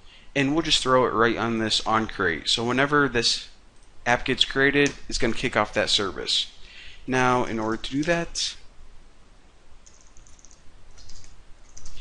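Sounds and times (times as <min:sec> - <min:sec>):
low hiss: 0:00.0 - 0:12.0
keyboard typing: 0:09.8 - 0:12.0.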